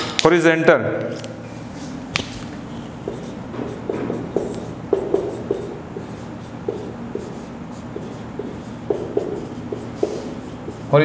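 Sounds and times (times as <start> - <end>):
marker squeaking on whiteboard: 2.7 - 11.0.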